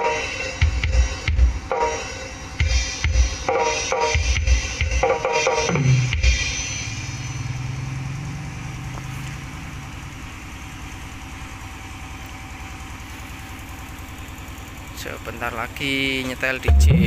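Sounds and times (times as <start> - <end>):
drum music through speakers: 0.0 - 7.4, 16.6 - 17.0
motorcycle engine passing: 5.8 - 11.9
low engine hum: 5.8 - 17.0.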